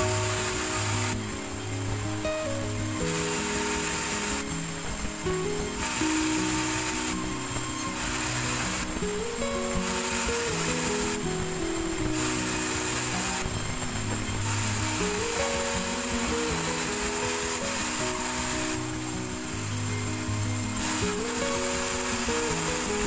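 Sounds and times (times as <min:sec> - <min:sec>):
background music melody: 0:00.0 - 0:23.0.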